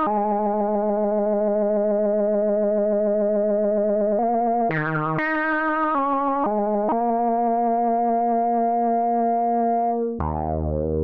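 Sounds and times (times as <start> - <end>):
buzzy synthesizer lead: 10.2 - 11.0.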